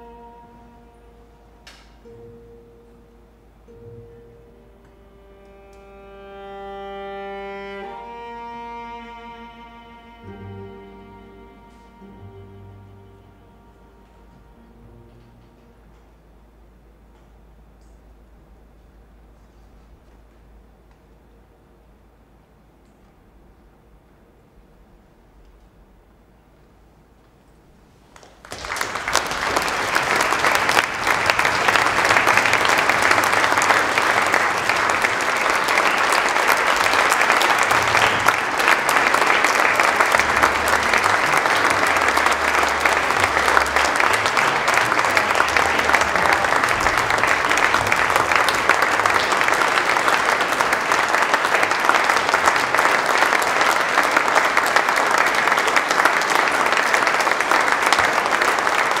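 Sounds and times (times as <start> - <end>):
audience applauding: 28.1 - 59.0.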